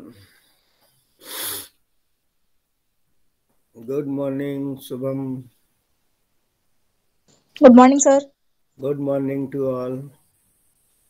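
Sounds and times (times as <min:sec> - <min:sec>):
short breath burst: 0:00.4 - 0:01.8.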